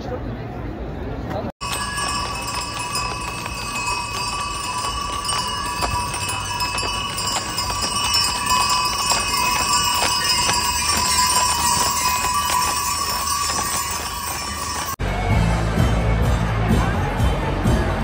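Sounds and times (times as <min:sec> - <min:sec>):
harness bells jingling: 0:01.6 - 0:15.0
hooves clip-clopping on pavement: 0:01.6 - 0:15.0.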